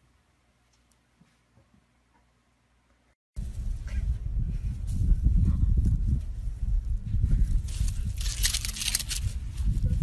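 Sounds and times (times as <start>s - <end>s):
wind buffeting microphone: 3.4s - 10.0s.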